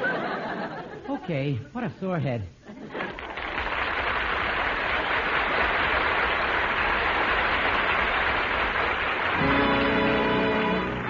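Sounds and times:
audience applauding: 0:02.9 - 0:11.0.

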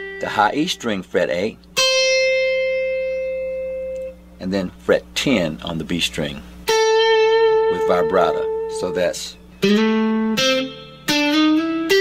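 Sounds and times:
electric guitar note ringing: 0:00.0 - 0:01.0, 0:01.7 - 0:04.4, 0:06.6 - 0:12.0.

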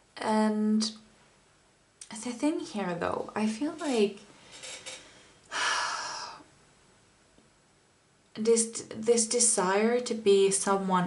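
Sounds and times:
woman speaking: 0:00.2 - 0:01.0, 0:02.0 - 0:04.3, 0:08.4 - 0:11.0.

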